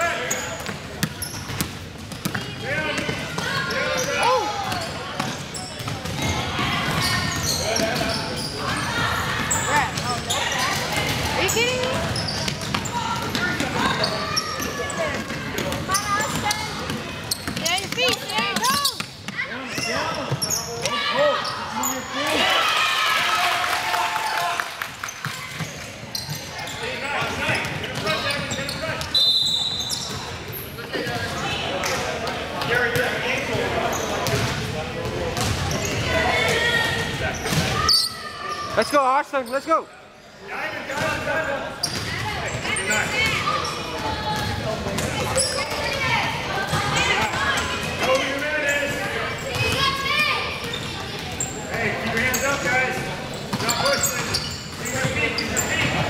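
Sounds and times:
voices and shouts: 2.4s - 25.8s, 35.7s - 56.0s.

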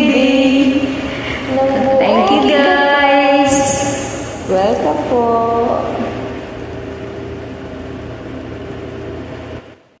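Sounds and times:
karaoke backing track chord: 0.0s - 7.1s
steady low drone: 0.0s - 9.7s.

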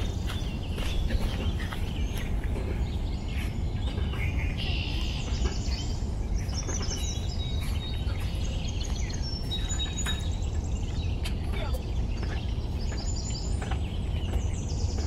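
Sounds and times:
birds chirping: 0.0s - 15.0s
steady low rumble: 0.0s - 15.0s.

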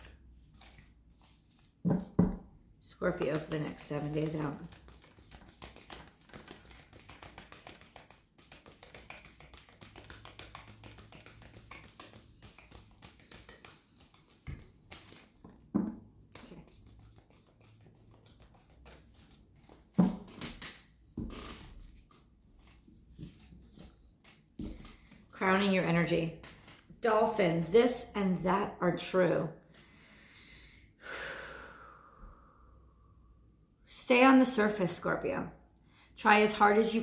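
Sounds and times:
cards being shuffled: 0.4s - 2.2s, 3.1s - 15.7s, 16.3s - 25.8s, 26.4s - 27.0s
knocks and taps of cards: 1.9s - 2.4s, 4.7s - 16.6s.

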